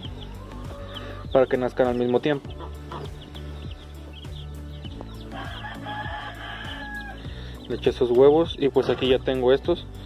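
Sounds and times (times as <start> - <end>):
hen calling: 0.0 - 9.2
background music: 0.0 - 10.0.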